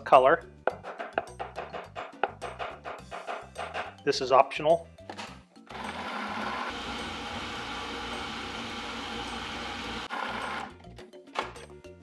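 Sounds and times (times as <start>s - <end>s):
food processor motor running: 5.7s - 10.8s.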